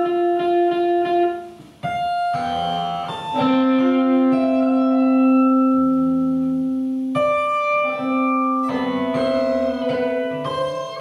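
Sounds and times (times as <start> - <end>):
electric guitars sustained notes: 0.0 - 11.0.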